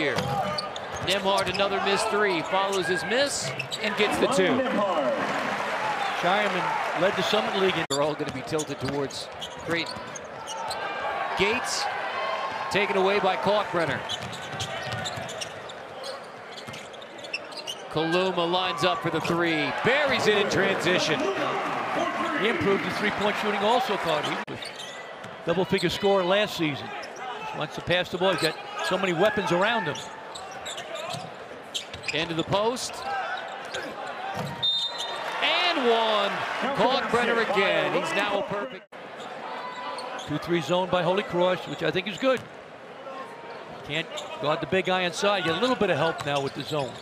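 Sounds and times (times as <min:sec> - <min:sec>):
sneaker squeaks: 0:00.1 - 0:04.1, 0:07.9 - 0:10.9, 0:14.0 - 0:18.0, 0:24.2 - 0:26.0, 0:28.3 - 0:29.0, 0:29.8 - 0:35.3, 0:39.2 - 0:40.5, 0:44.1 - 0:44.4, 0:46.2 - 0:47.0.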